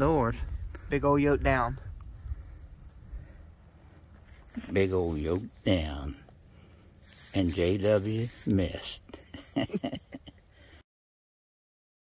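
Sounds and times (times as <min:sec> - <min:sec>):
faint low rumble: 0:00.0 - 0:10.5
soft ticks: 0:01.9 - 0:03.3.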